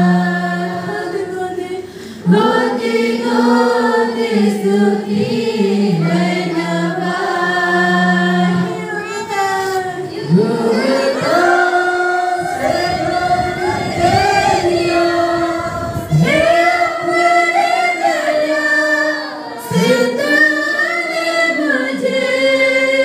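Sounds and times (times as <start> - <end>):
choir singing worship song: 0.0 - 23.0.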